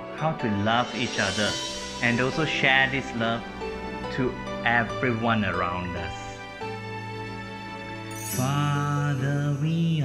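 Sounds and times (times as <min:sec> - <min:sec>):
sustained instrumental chords: 0:00.0 - 0:10.0
man singing a worship song: 0:08.3 - 0:10.0.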